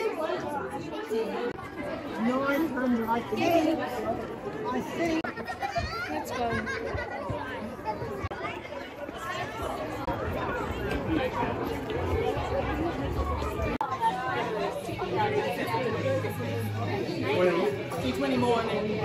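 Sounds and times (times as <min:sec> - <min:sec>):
chatter of many people: 0:00.0 - 0:19.0.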